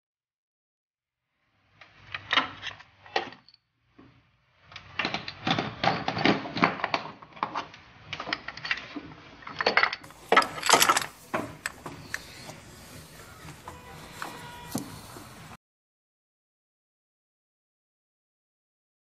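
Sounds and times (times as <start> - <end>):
metallic clicks and clatter: 4.7 - 12.7.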